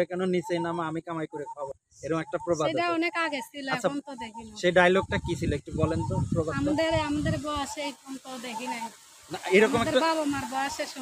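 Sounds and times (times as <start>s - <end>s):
woman speaking: 2.6s - 4.6s, 6.5s - 9.0s, 9.7s - 11.0s.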